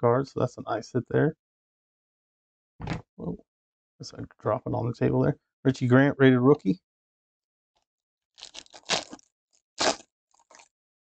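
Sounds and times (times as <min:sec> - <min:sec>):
foil wrapper crinkling and tearing: 0:08.4 - 0:10.7.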